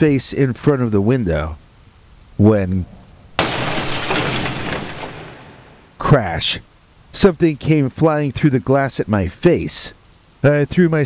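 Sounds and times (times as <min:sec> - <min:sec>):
window glass smashing: 0:03.4 - 0:06.0.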